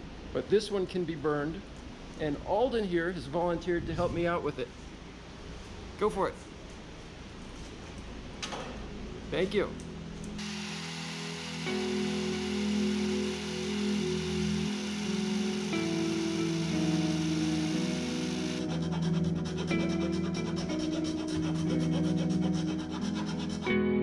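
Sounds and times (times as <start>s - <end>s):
background music: 9.8s - 24.0s
electric sander on wood: 10.4s - 23.6s
hand file rasping on wood: 10.4s - 23.7s.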